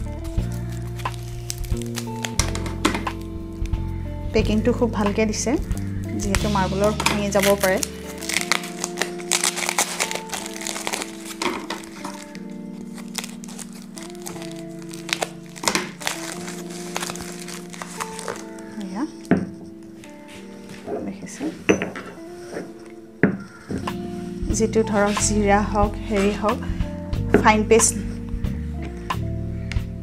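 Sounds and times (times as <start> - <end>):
paper wrapping crinkling: 0.0 - 3.8, 5.8 - 21.3
background music held notes: 0.0 - 30.0.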